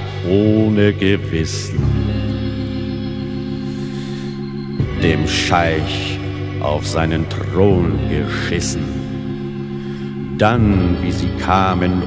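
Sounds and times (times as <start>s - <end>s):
organ holding chord: 0.0s - 12.0s.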